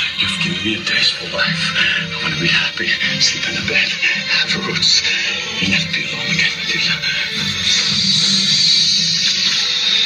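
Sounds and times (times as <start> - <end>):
film soundtrack music: 0.0 - 10.0.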